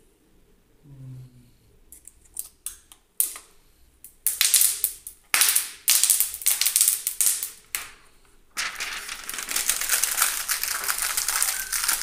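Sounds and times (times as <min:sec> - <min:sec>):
plastic sheet peeling and crackling: 0:08.5 - 0:12.0.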